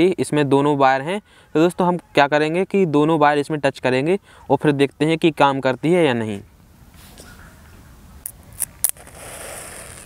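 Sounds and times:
matchstick head burning with hiss: 8.6 - 10.0.

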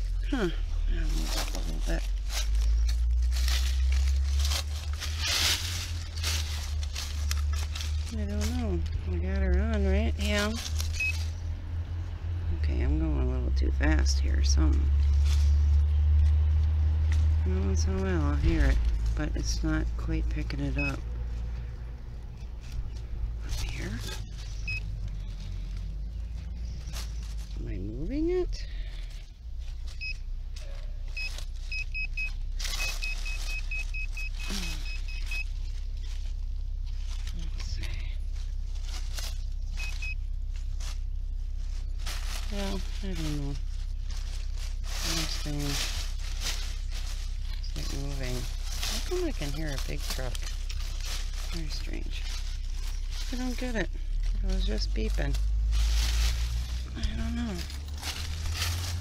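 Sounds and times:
digging scraping and knocks: 0.0 - 11.6, 12.6 - 28.4, 29.0 - 59.0
truck engine rumble: 0.0 - 59.0.

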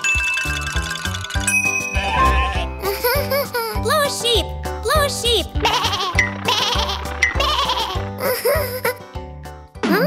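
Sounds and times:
bouncy children's music: 0.0 - 10.0
cartoon sheep bleating: 2.0 - 2.8.

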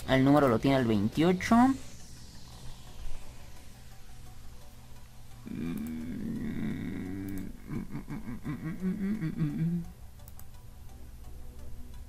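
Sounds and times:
man humming: 5.4 - 10.0.

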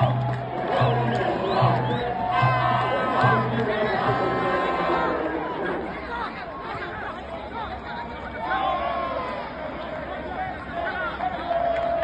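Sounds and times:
group singing or chanting: 0.0 - 6.0
men calling and talking: 0.0 - 11.4.

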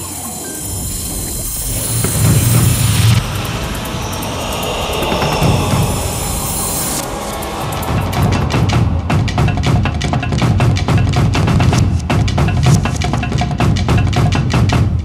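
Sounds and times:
whooshing sweeps: 0.0 - 10.8
news intro music: 0.1 - 14.8
deep low booms: 0.9 - 12.8.

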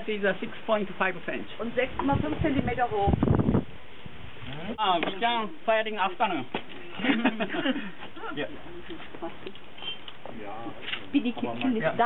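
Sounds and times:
people talking: 0.0 - 3.2.

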